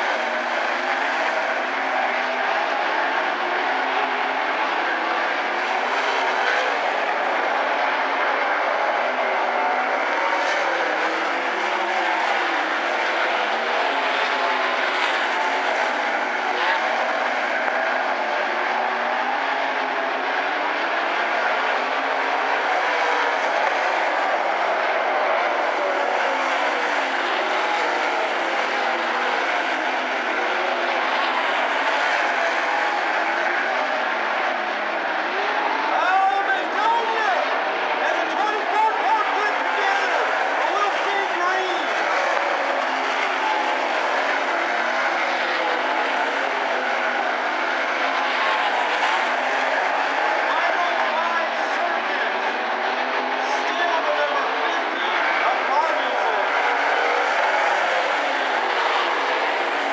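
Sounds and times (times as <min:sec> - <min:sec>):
racing car engines: 0:00.0 - 0:59.9.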